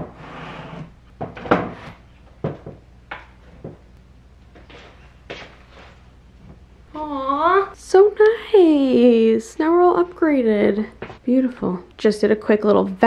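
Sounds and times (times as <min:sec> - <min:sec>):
frames knocking against wall: 0:02.4 - 0:03.9.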